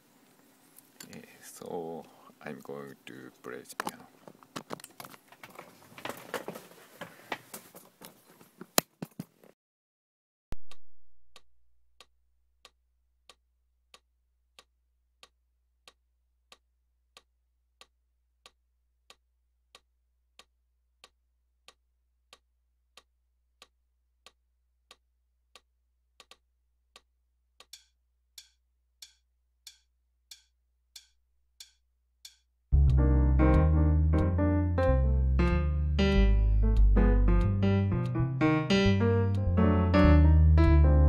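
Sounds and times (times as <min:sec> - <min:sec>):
metronome clicking: 0:27.6 - 0:34.3
digital piano playing: 0:32.8 - 0:41.0.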